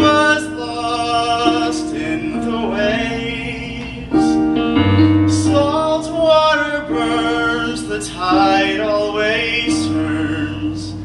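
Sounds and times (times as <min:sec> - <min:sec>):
man singing a ballad: 0:00.0 - 0:04.6, 0:05.3 - 0:11.0
piano accompaniment: 0:00.0 - 0:11.0.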